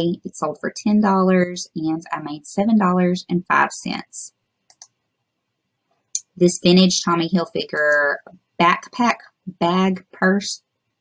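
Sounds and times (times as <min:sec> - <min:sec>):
computer mouse clicks: 0:04.6 - 0:05.0.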